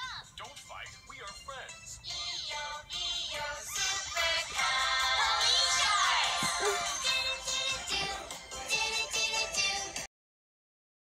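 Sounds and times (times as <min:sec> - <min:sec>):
children's song through phone speaker: 0:00.0 - 0:10.1.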